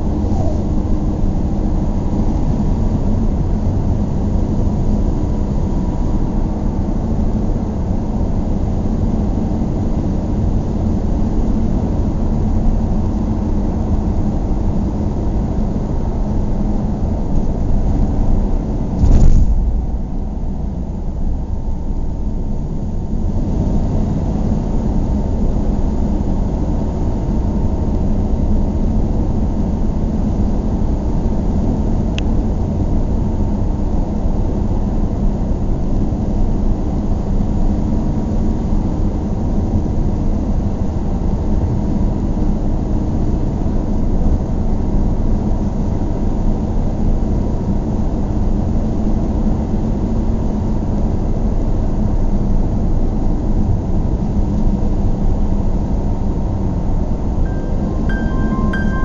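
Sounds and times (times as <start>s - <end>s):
loud thump: 19.0s - 20.4s.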